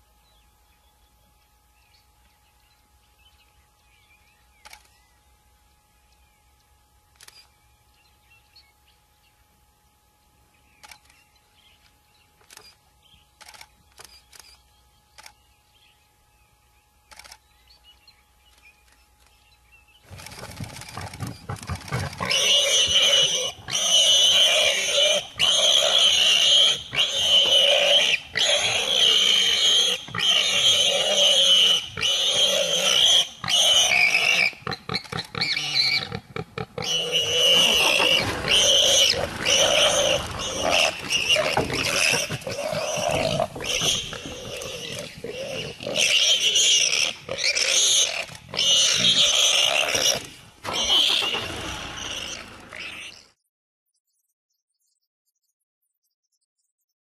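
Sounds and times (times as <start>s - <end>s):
warthog squealing: 21.5s - 53.3s.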